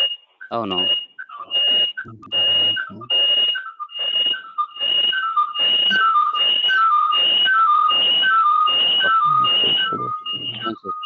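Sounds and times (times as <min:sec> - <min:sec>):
loud whistle-like call: 0:00.0 - 0:11.0.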